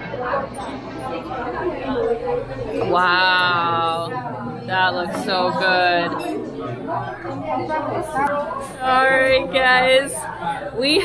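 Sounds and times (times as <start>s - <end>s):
diners chattering: 0.0s - 11.0s.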